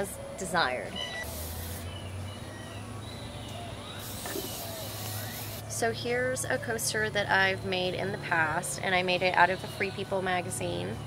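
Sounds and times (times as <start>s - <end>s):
aerosol spray can hissing: 1.3s - 1.9s, 4.0s - 5.6s.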